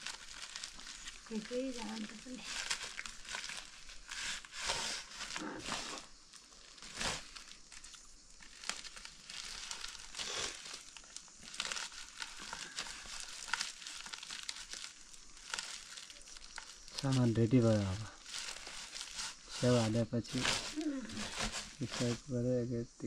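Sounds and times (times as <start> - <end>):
plastic sack rustling: 0.0 - 22.3.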